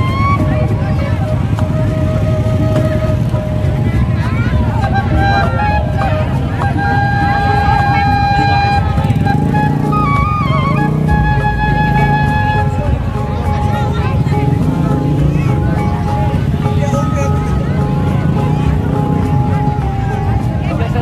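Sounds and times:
crowd voices: 0:00.0 - 0:21.0.

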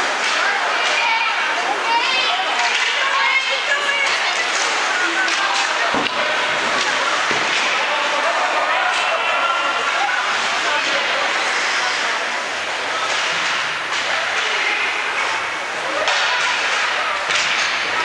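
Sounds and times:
spectators and players calling out: 0:00.0 - 0:18.0
knocks on rink boards: 0:04.0 - 0:09.1, 0:15.9 - 0:18.0.

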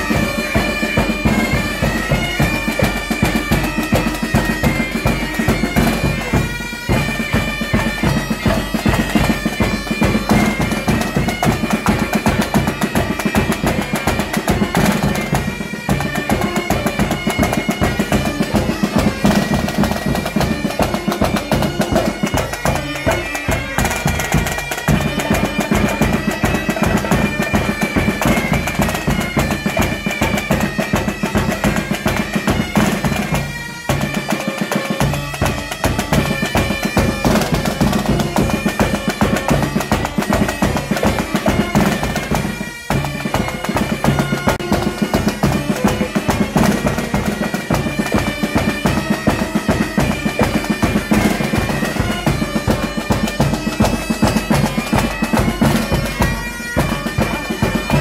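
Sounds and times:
bagpipes playing over drone: 0:00.0 - 0:58.0
snare drums beating: 0:00.0 - 0:58.0.

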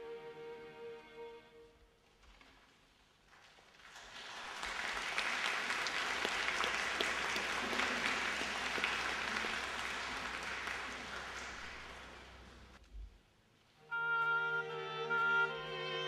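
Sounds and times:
audience applauding: 0:03.3 - 0:12.8.

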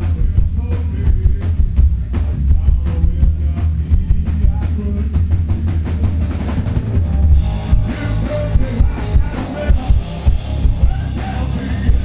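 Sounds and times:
drums: 0:00.0 - 0:12.0
live hard rock band playing: 0:00.0 - 0:12.0.

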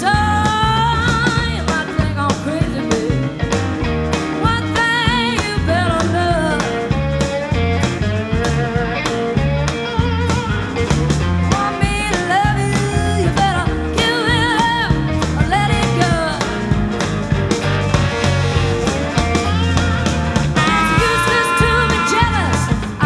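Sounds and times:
blues band playing: 0:00.0 - 0:23.0
electric guitar lead: 0:00.0 - 0:23.0.

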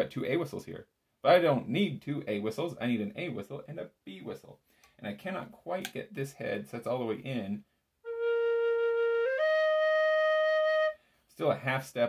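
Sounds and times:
tin whistle held notes: 0:08.1 - 0:11.0.

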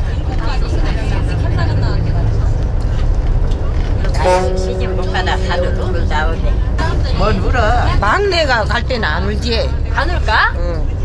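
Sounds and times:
bus interior rumble: 0:00.0 - 0:11.0
faint passenger talk: 0:00.0 - 0:11.0.

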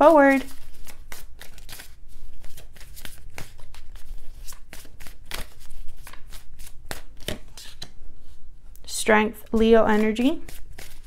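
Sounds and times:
cards shuffling: 0:00.3 - 0:08.0, 0:09.9 - 0:11.0.

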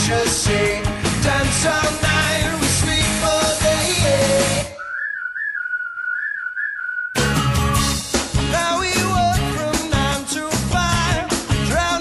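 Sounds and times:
rock band playing: 0:00.0 - 0:04.7, 0:07.2 - 0:12.0
whistled melody: 0:04.7 - 0:08.1.

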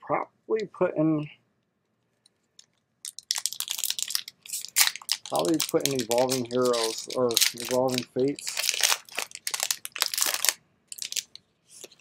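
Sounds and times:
foil wrapper crinkling and tearing: 0:03.0 - 0:12.0.

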